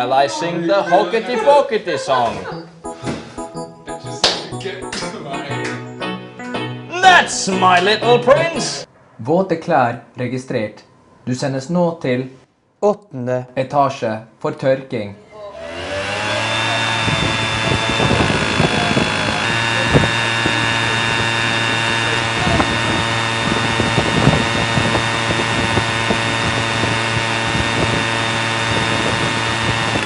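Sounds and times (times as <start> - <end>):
electric blower fan whining: 15.5 - 30.0.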